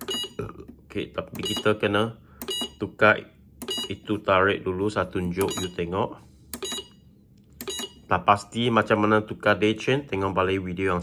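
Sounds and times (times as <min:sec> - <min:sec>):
short electronic beeps: 0:00.0 - 0:00.4, 0:02.4 - 0:02.8, 0:03.6 - 0:04.0, 0:05.4 - 0:05.8, 0:06.6 - 0:07.0, 0:07.6 - 0:08.1.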